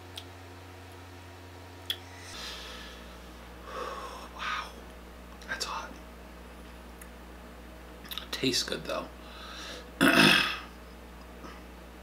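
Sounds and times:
steady low hum: 0.0 - 12.0
person breathing out hard: 2.1 - 4.7, 9.2 - 9.9.

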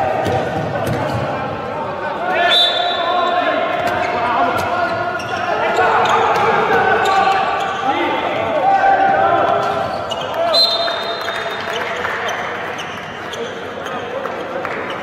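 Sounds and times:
players shouting: 0.0 - 11.6
ball bouncing on indoor court: 0.1 - 1.4.

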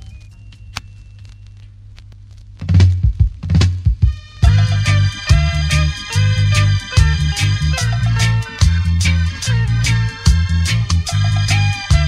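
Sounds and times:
low hum: 0.0 - 12.0
deep drum and bass hits: 2.6 - 12.0
reggae band playing: 4.1 - 12.0.

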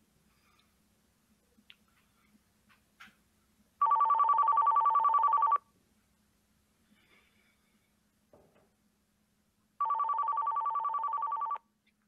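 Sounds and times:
telephone two-tone ringing: 3.8 - 5.6, 9.8 - 11.6.

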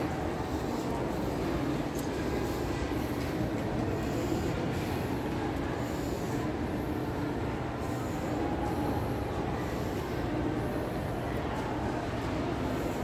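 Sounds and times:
shopping mall rumble: 0.0 - 13.0.

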